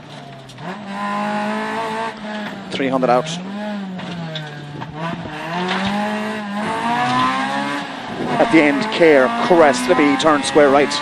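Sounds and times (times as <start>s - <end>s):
rally car engine accelerating: 0.0s - 11.0s.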